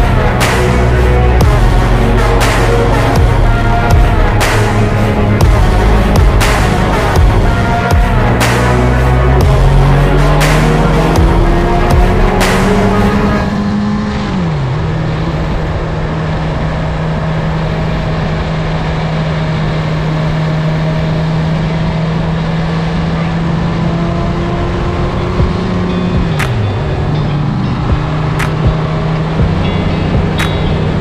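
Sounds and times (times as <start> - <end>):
motorcycle engine cruising: 0.0 - 31.0.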